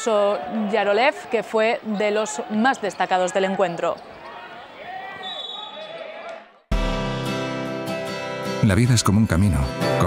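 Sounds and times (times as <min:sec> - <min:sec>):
voices in a hall: 0:00.0 - 0:06.7
guitar music: 0:06.7 - 0:10.0.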